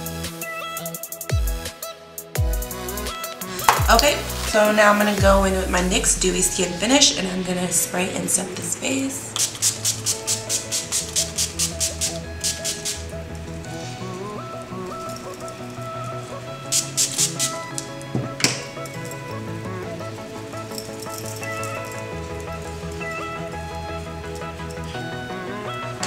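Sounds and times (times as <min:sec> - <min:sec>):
background music: 0:00.0 - 0:26.0
spray bottle spritzing: 0:03.3 - 0:05.1, 0:09.3 - 0:14.0, 0:16.6 - 0:18.0.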